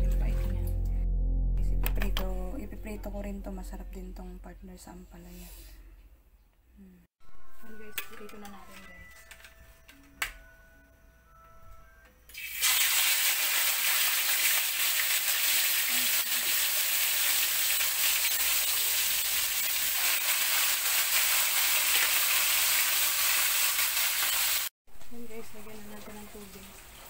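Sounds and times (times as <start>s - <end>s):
fish sizzling in hot oil: 12.3s - 24.7s.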